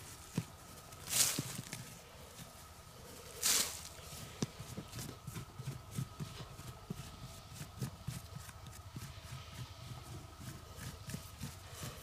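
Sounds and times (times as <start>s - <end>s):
hand scraping dry soil: 0.0s - 12.0s.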